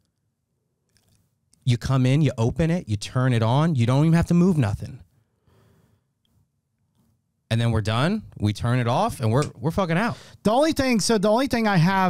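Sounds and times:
faint breath: 5.1 - 6.2, 10.1 - 10.4.

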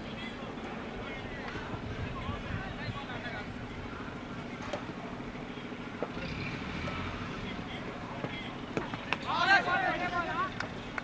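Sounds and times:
distant indistinct voices: 0.0 - 11.0.

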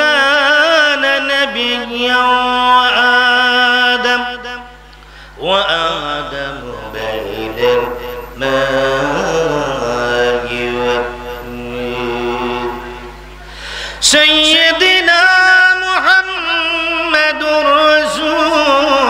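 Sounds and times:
man chanting through microphone: 0.0 - 4.8, 5.4 - 19.0.

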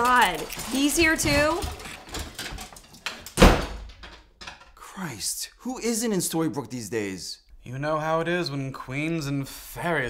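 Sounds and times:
door banging shut: 1.4 - 4.7.

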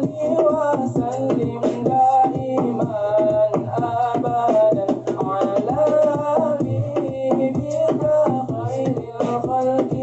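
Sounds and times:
beatboxing drum beat: 0.0 - 10.0
men singing a cappella: 0.0 - 10.0.

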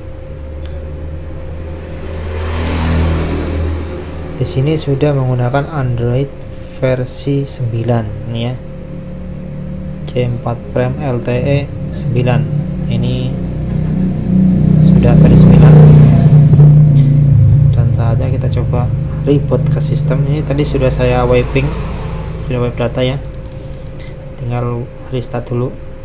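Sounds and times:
vehicle engine: 0.0 - 25.0
low hum: 0.0 - 26.0.

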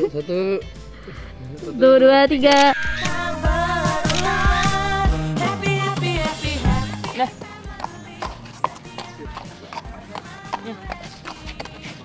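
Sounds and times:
faint background music: 0.0 - 12.0
horse hooves clopping on pavement: 6.6 - 12.0.

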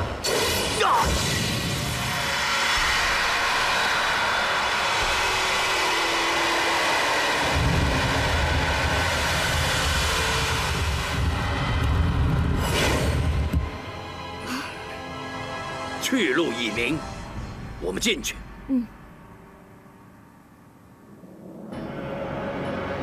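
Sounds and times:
roaring rush of noise: 1.5 - 13.5
deep rumble: 2.8 - 13.8.

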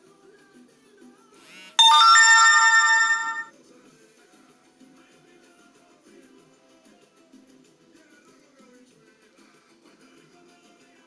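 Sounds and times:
faint music from laptop speakers: 0.0 - 1.0, 4.6 - 11.0
loud ringing chime: 1.8 - 3.5.

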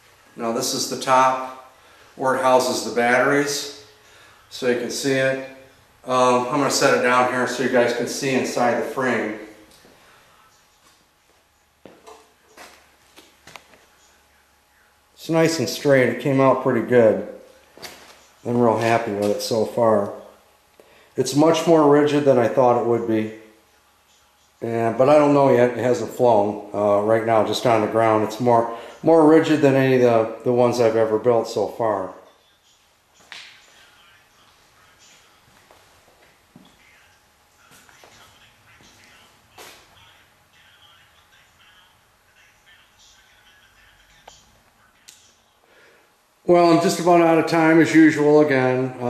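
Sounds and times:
faint scuffs: 10.8 - 13.9, 17.7 - 19.4, 37.7 - 40.0.

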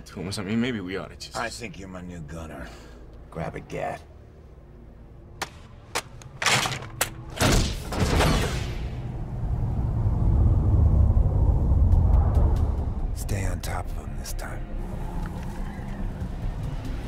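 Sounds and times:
deep rumble: 8.7 - 17.0.

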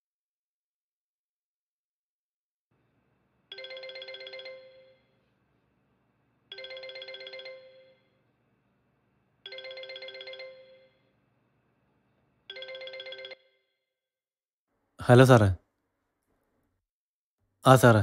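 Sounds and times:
phone ringtone: 3.5 - 5.2, 6.5 - 8.2, 9.4 - 11.2, 12.5 - 13.9.

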